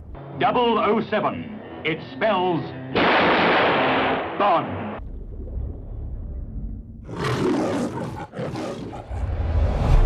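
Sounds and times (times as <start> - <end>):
deep rumble: 4.8 - 7.1, 9.1 - 10.0.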